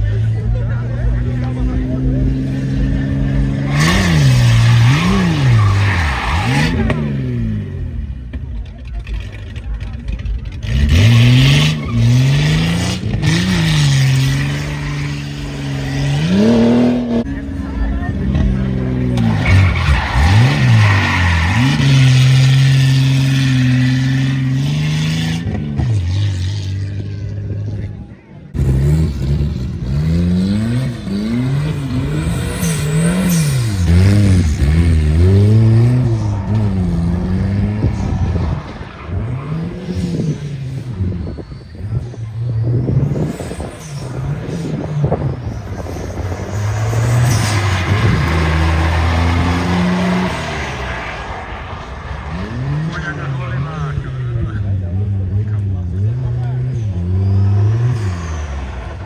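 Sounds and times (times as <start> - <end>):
car engine revving hard: 1.1 - 8.0, 10.5 - 17.4, 18.3 - 27.3, 28.6 - 59.0.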